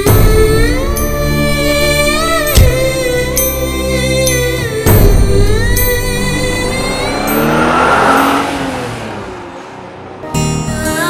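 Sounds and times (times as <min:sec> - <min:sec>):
background music: 0:00.0 - 0:11.0
car driving past: 0:05.2 - 0:10.8.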